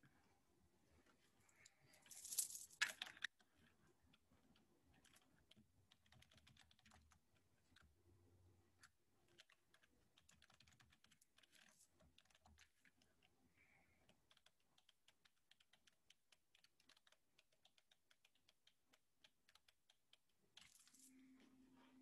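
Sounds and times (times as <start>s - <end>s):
typing on computer keyboard: 4.5s - 7.9s, 8.8s - 21.2s
low steady hum: 21.0s - 22.0s.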